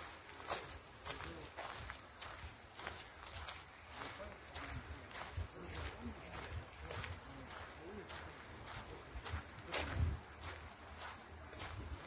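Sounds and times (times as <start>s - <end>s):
footsteps on sandy dirt path: 0.0s - 12.0s.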